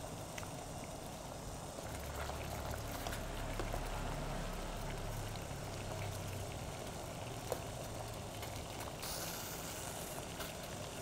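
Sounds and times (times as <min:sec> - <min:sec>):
low steady hum: 0:00.0 - 0:09.1
food bubbling and crackling: 0:00.0 - 0:11.0.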